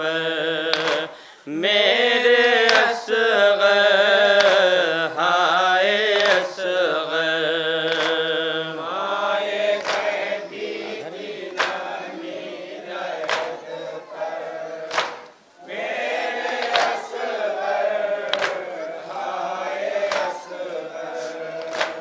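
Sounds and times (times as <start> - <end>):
men chanting a lament: 0.0 - 22.0.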